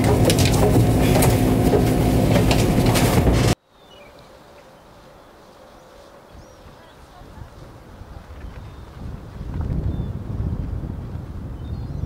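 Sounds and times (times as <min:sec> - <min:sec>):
boat engine rumble and hum: 0:00.0 - 0:03.6.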